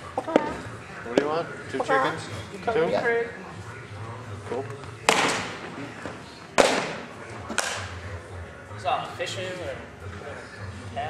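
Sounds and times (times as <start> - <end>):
baseball bat cracking ball: 0.2 - 0.6, 5.0 - 5.7, 6.6 - 7.9.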